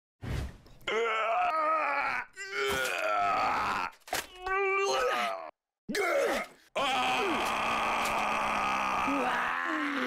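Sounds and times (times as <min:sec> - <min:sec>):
person groaning: 0:04.6 - 0:10.0.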